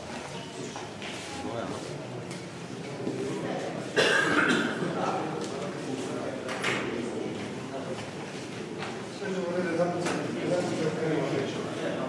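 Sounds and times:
low background voices: 0.0s - 12.0s
person coughing: 4.0s - 4.8s.

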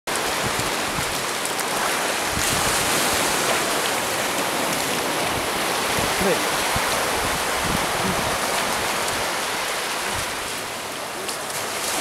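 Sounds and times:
small waves washing over sand: 0.1s - 12.0s.

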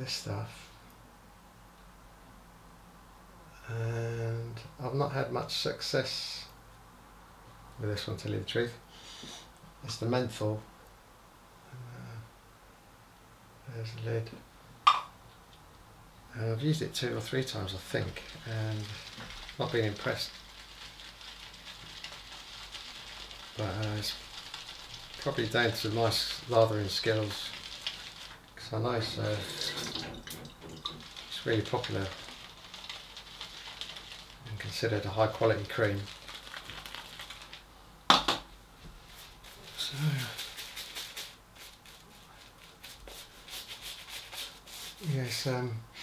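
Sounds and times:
shaving brush lathering cream: 16.9s - 37.6s, 39.1s - 45.1s.

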